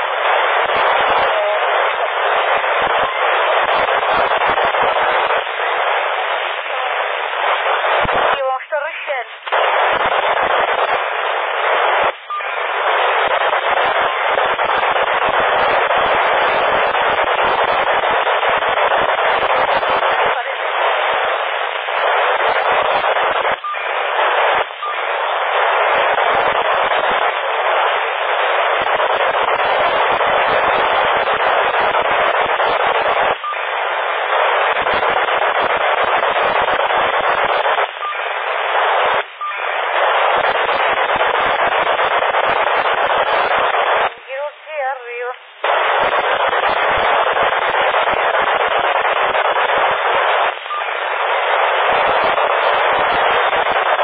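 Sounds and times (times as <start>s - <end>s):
radio static hiss: 0.0s - 54.0s.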